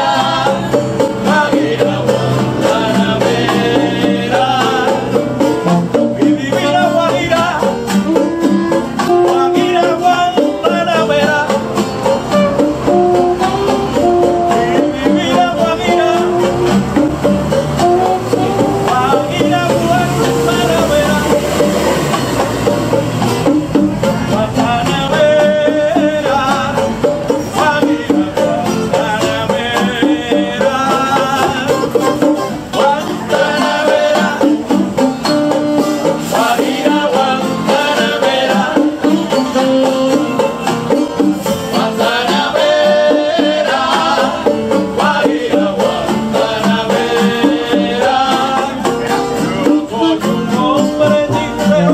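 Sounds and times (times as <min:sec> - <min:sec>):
bongos: 0:00.0 - 0:51.9
guitars strumming: 0:00.0 - 0:51.9
hand drums: 0:00.0 - 0:51.9
pitched melody line: 0:00.0 - 0:51.9
saxophone: 0:04.0 - 0:24.7, 0:31.2 - 0:34.4, 0:35.0 - 0:43.0, 0:47.8 - 0:51.9.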